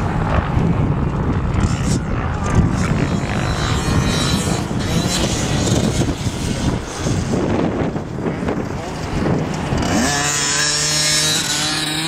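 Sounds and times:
two-stroke motorbike engine revving: 0:00.0 - 0:12.0.

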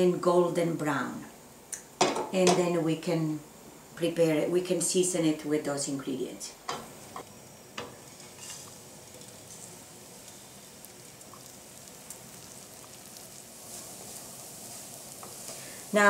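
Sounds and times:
breadcrumbs sizzling in oil: 0:03.9 - 0:16.0
spatula scraping skillet: 0:06.7 - 0:16.0.

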